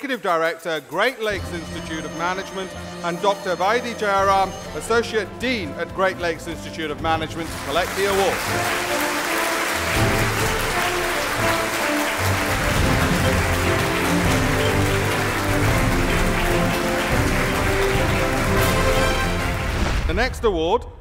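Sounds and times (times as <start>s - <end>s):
walk-on music: 0.0s - 19.8s
audience applause: 7.2s - 20.0s.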